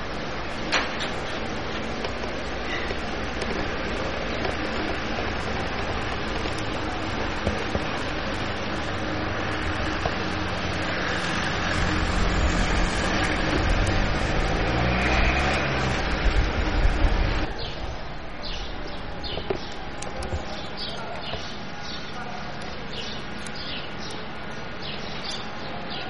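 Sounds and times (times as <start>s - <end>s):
motor vehicle engine hum: 0.0s - 21.4s.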